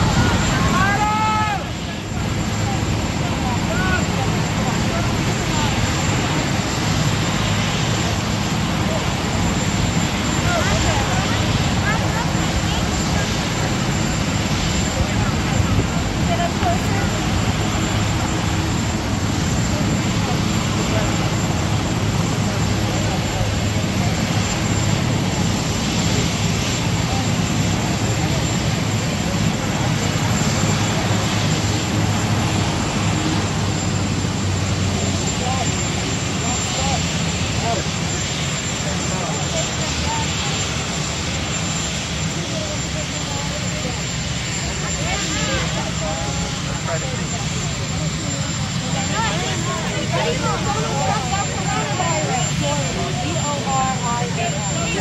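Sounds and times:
aircraft-like engine rumble: 0.0s - 55.0s
faint crowd voices: 0.0s - 55.0s.

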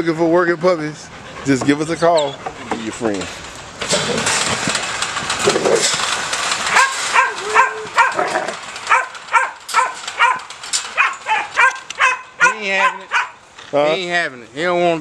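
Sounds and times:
rough noise: 0.9s - 12.5s
puppy barking aggressively: 6.6s - 13.4s.

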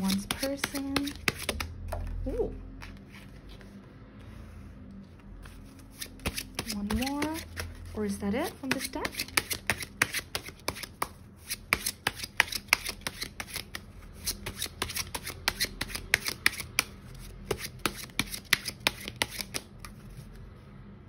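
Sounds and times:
cards being shuffled: 0.0s - 4.2s, 5.2s - 20.5s.

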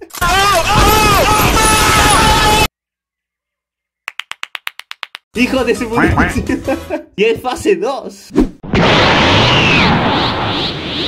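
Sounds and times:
rapid sharp taps: 4.1s - 5.2s.

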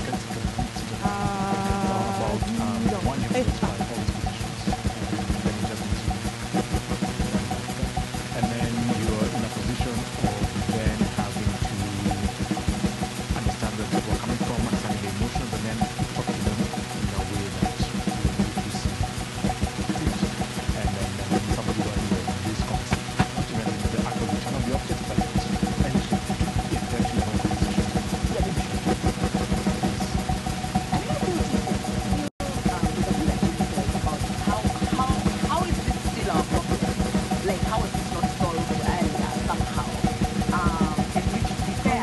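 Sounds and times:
crackling noise texture: 0.0s - 42.0s
drone of sustained tones: 0.0s - 42.0s
fast irregular low pulse: 0.0s - 42.0s.

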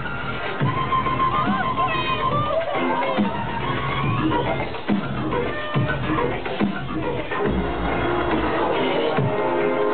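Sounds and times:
electronic dance music: 0.0s - 9.9s.

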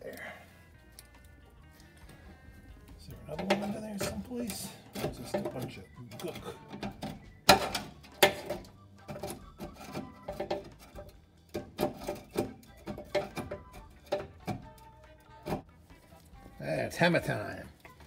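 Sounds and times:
screwdriver scraping metal: 3.1s - 15.6s
metal clicks and knocks: 3.3s - 15.6s.

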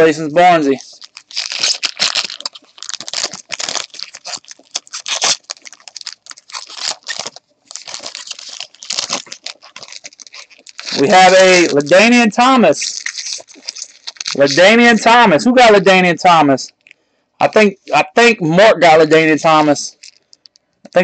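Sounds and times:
plastic packaging crinkling: 0.0s - 15.2s, 16.7s - 17.6s, 19.6s - 21.0s.

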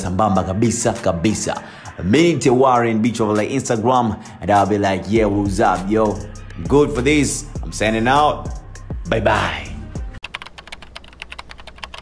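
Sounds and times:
rapid keyboard typing: 10.2s - 12.0s.

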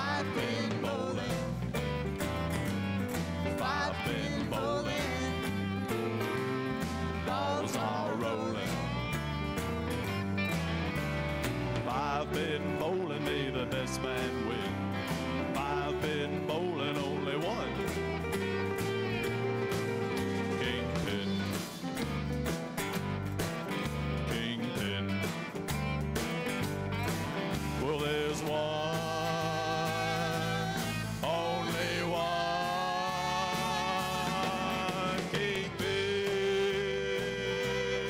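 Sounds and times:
country-folk band playing: 0.0s - 38.0s
steady bass line: 0.0s - 38.0s.

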